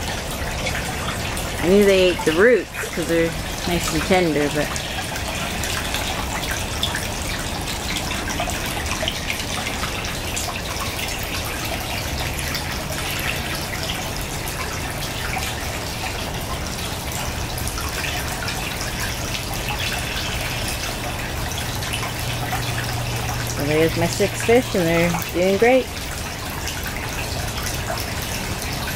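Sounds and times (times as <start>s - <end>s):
water splashing into a tub: 0.0s - 28.9s.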